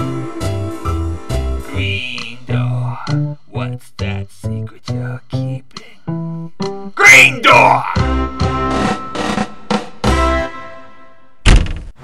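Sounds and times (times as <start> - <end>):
door slamming shut: 11.4 - 12.0.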